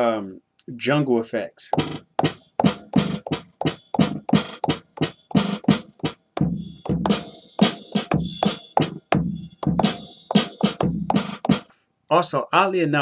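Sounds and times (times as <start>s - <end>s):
glitchy hi-hat hits: 1.8s - 11.7s.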